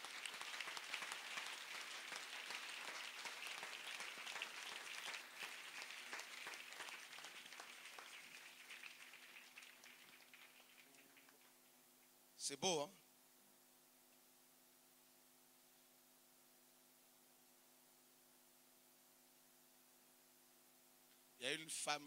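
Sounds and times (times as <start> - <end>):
congregation applauding: 0.0 - 11.8.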